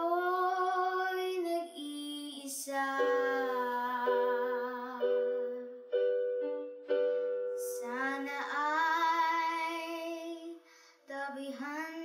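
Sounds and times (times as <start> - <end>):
electronic keyboard chords: 3.0 - 7.8.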